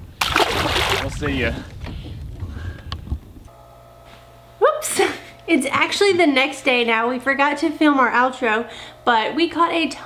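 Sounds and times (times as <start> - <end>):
wind rumble on microphone: 0.0 - 3.5
steady electrical hum: 2.6 - 10.0.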